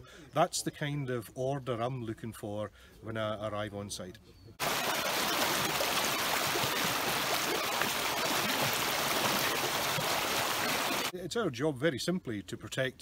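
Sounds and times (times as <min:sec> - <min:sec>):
stream running over stones: 0:04.6 - 0:11.1.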